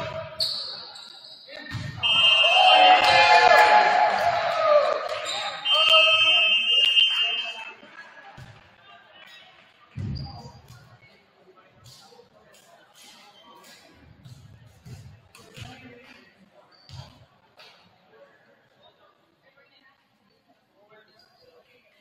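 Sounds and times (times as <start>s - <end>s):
shrill whistle: 2.0s - 3.2s, 5.2s - 7.7s
people shouting and cheering: 2.0s - 7.8s.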